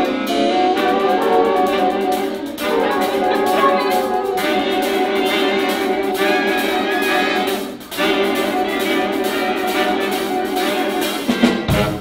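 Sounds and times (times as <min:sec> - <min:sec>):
big band playing: 0:00.0 - 0:12.0.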